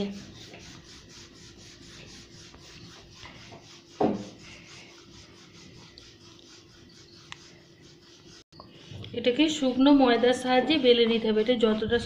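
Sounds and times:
rolling pin rubbing on dough: 0.0s - 12.0s.

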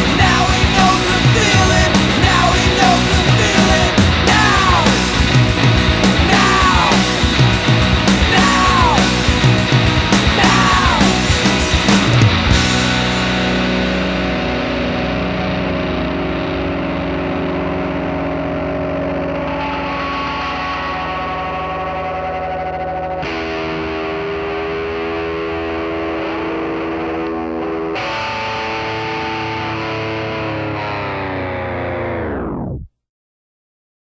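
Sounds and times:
distorted electric guitar chords: 0.0s - 32.9s.

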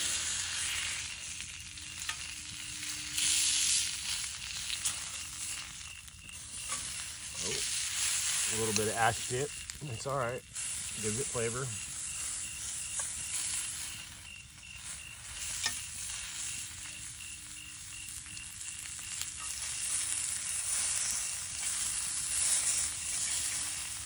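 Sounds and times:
meat sizzling in a pan: 0.0s - 24.0s.

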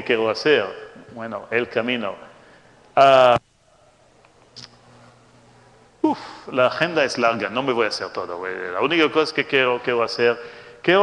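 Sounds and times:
man saying ehh: 6.0s - 6.6s.

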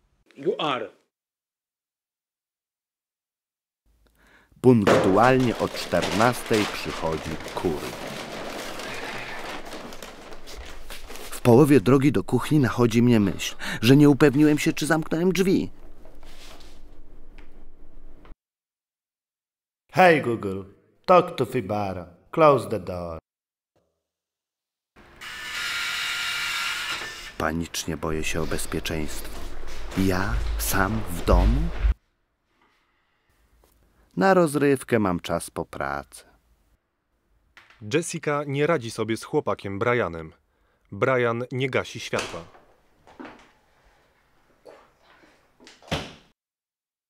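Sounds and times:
door lock motor whirring: 25.2s - 27.4s
door slamming shut: 45.8s - 46.3s.

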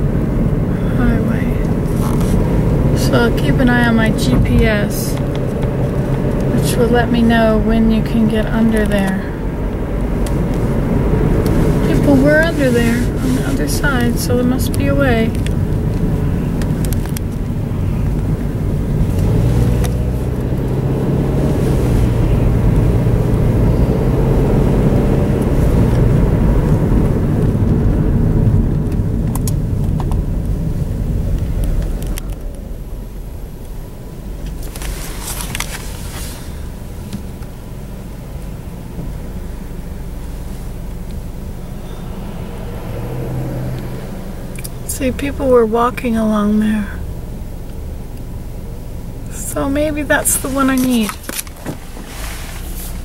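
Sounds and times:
car engine and tyres rumbling: 0.0s - 53.0s.

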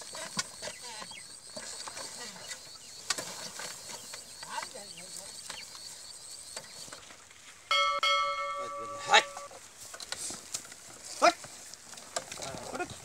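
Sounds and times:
bell-like ring: 7.7s - 9.6s.

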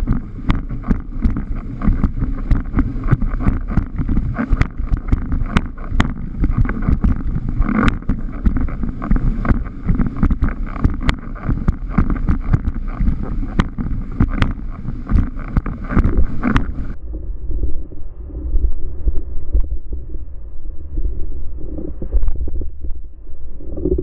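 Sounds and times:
board knocking and slapping on water: 0.0s - 17.0s
wind buffeting microphone: 0.0s - 20.4s.

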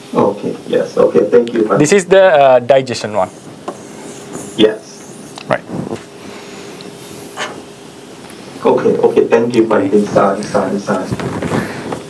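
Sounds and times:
faint hum: 0.0s - 12.0s
room tone hiss: 0.0s - 12.0s.

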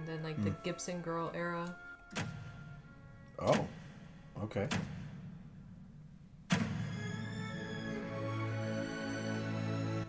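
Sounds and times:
film score chord: 6.6s - 10.0s.

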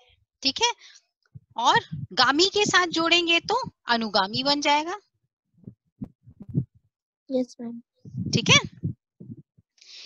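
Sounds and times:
faint muffled low sounds: 1.3s - 4.6s, 5.6s - 9.6s.

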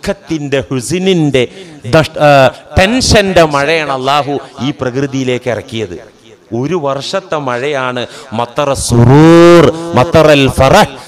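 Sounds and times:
man preaching loudly: 0.0s - 11.0s.

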